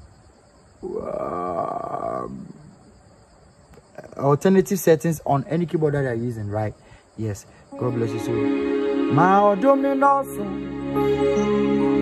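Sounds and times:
man saying uhh: 0:00.8 - 0:02.6.

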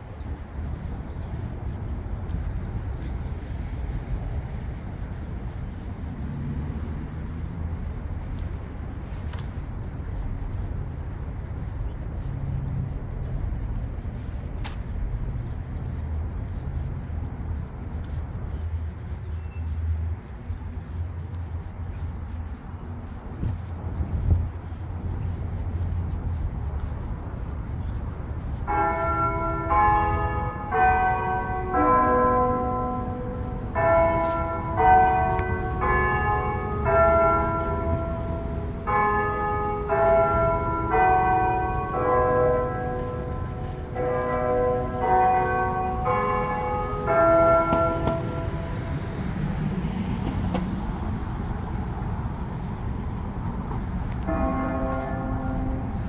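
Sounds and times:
low street rumble: 0:00.0 - 0:56.0
church bells chiming a tune: 0:28.6 - 0:49.1, 0:54.0 - 0:56.0.

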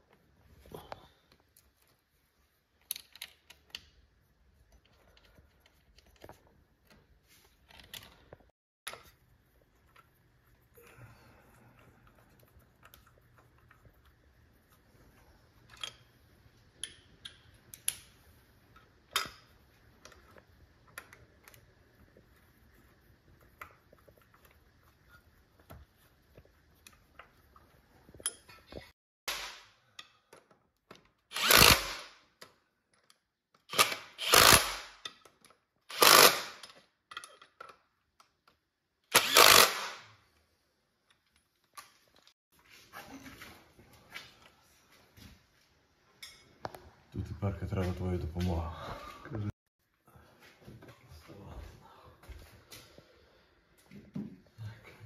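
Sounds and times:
impact wrench bursts: 0:31.3 - 0:32.2, 0:33.7 - 0:35.0, 0:35.9 - 0:36.6, 0:39.1 - 0:40.0.

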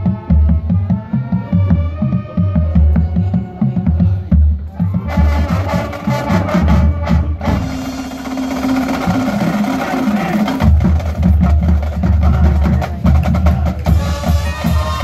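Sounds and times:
low drums: 0:00.0 - 0:15.0
marching band playing: 0:00.0 - 0:15.0.

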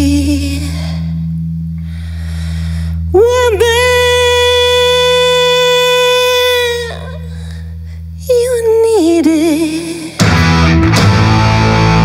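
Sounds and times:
low amplifier hum: 0:00.0 - 0:12.0
woman singing long note: 0:03.1 - 0:07.3.

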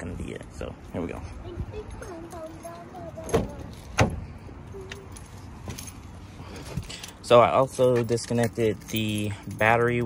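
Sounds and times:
keys jangling: 0:04.7 - 0:10.0.

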